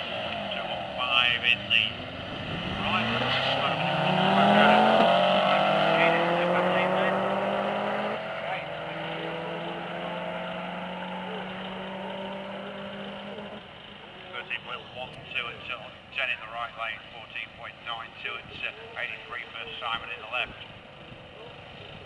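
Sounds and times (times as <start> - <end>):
racing car engines revving: 0.0 - 22.0.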